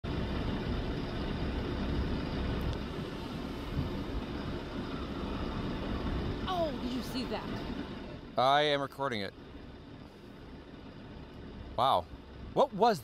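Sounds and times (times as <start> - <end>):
low rumbling background noise: 0.0 - 13.0.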